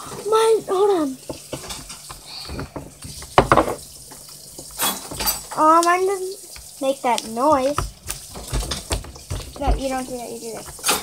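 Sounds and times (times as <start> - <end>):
wet slime squelches: 5.4 - 10.8.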